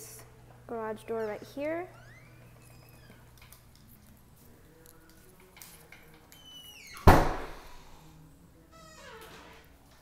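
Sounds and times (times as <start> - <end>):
door hinge squeaking: 1.0 - 3.4, 6.3 - 7.2, 8.7 - 9.7
door thunk: 7.0 - 7.6.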